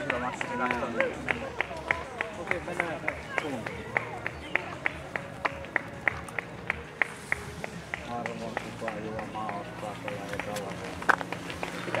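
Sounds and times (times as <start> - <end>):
people talking: 8.0 - 11.1.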